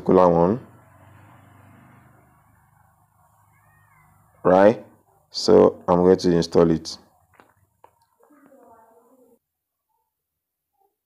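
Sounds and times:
faint rising and falling call: 0:00.6 - 0:05.3.

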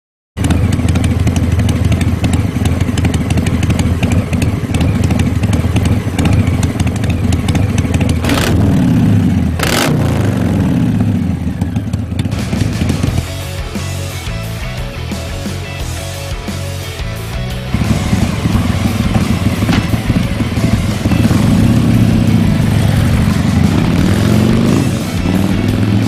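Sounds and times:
motorcycle engine idling and revving: 0:00.4 - 0:26.0.

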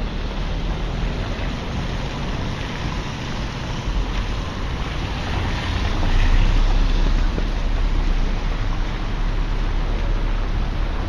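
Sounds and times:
car tyres hissing on wet road: 0:00.0 - 0:11.0
wind rumbling on microphone: 0:00.0 - 0:11.0.

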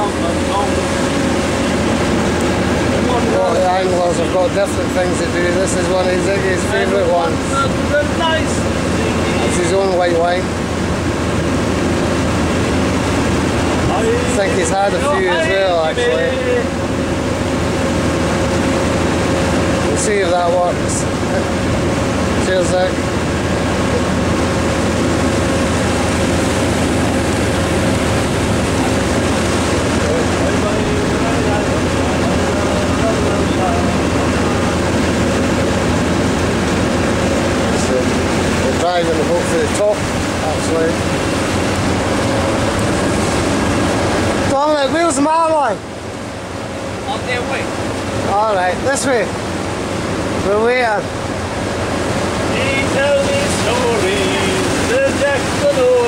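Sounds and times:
boat engine drone: 0:00.0 - 0:56.0
wind and water rushing: 0:00.0 - 0:56.0.

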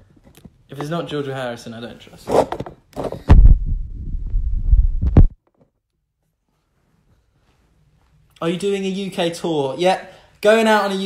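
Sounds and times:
phone microphone handling rumble: 0:02.4 - 0:05.4.

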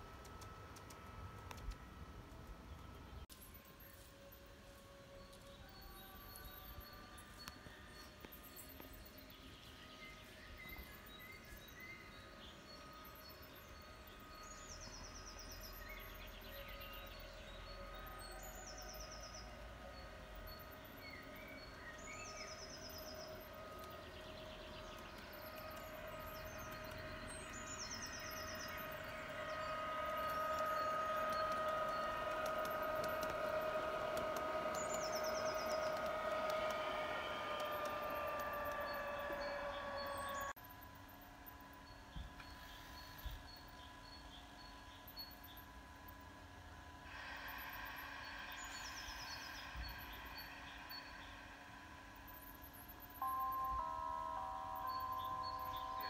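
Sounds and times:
model train motor whine: 0:00.0 - 0:56.0
bird chirps: 0:05.4 - 0:40.6, 0:47.2 - 0:51.6, 0:52.3 - 0:56.0.

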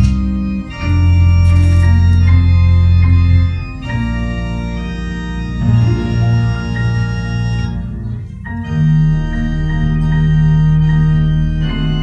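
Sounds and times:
church organ chords: 0:00.0 - 0:12.0
grand piano playing: 0:00.0 - 0:12.0.

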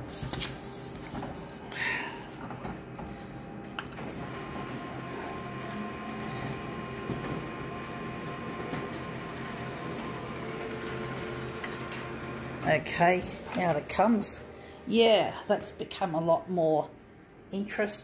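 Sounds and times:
photocopier whirring with high whine: 0:00.0 - 0:18.0.

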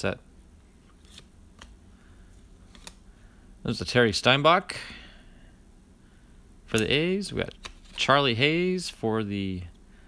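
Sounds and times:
cards sliding: 0:00.7 - 0:01.8, 0:02.6 - 0:03.1, 0:06.8 - 0:08.2.

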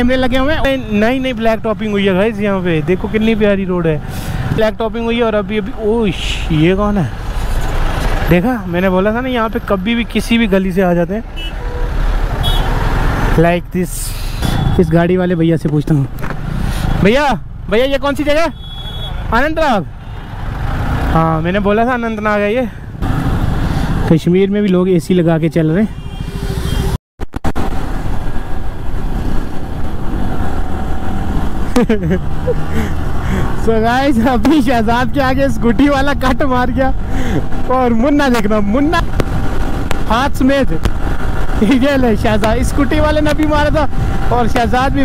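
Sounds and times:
man talking: 0:00.0 - 0:07.2, 0:08.2 - 0:11.3, 0:13.4 - 0:16.2, 0:17.0 - 0:18.6, 0:21.1 - 0:22.8, 0:24.1 - 0:26.0, 0:33.5 - 0:39.1, 0:40.0 - 0:40.9, 0:41.6 - 0:45.0
motorcycle in traffic: 0:00.0 - 0:45.0
wind rush on microphone: 0:39.0 - 0:45.0.

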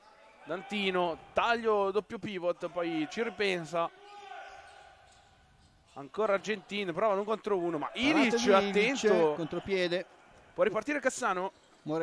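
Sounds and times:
voice in a hall: 0:05.9 - 0:12.0.

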